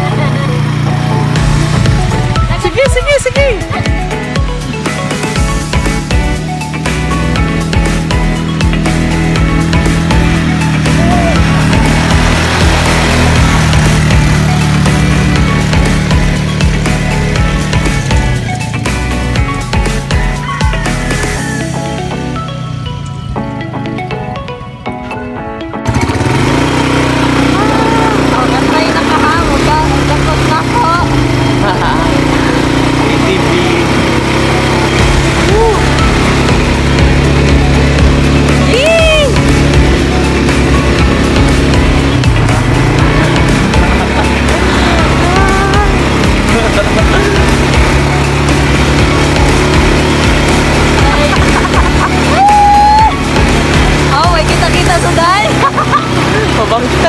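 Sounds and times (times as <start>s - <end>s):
atv engine running: 0.0s - 57.0s
people laughing and shrieking: 10.8s - 11.7s, 51.0s - 53.4s.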